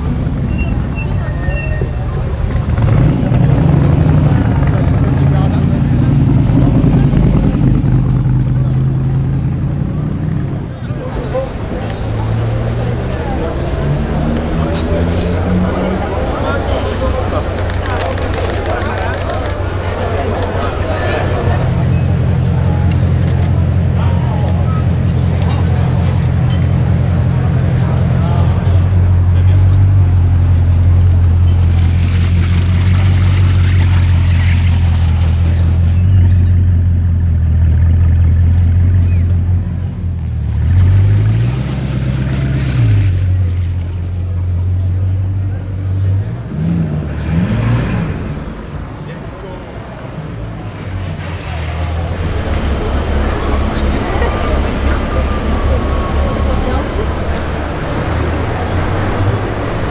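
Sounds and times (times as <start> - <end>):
voices of onlookers: 0.0 - 59.9.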